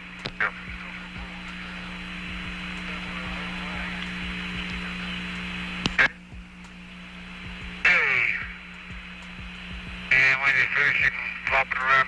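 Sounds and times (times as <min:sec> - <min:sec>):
radio channel hiss: 0:00.0 - 0:12.0
steady low hum: 0:00.0 - 0:12.0.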